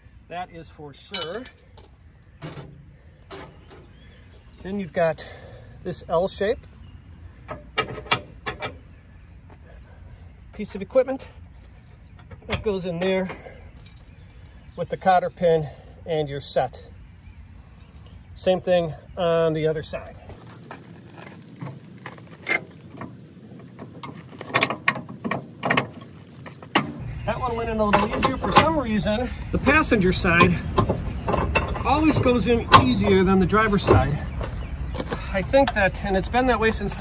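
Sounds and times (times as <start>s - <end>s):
metal hardware clanking and clicking: 1.0s - 3.9s, 7.4s - 8.8s, 11.6s - 14.1s, 21.2s - 27.1s, 27.7s - 34.2s
metal pin clinking on bracket: 1.1s - 3.8s.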